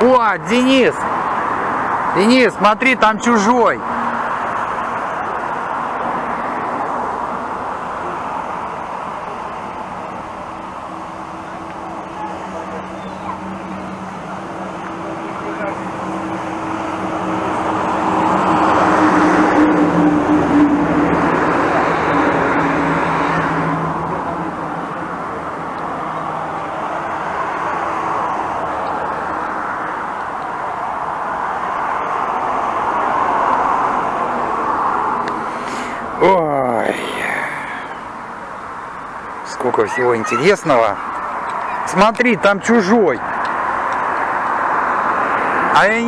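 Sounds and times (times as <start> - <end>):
cars passing: 0.0 - 46.0.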